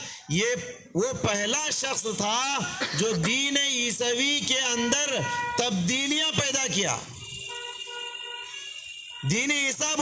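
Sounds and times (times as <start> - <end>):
street traffic: 0.0 - 10.0
vehicle horn long note: 4.8 - 5.7, 7.2 - 9.5.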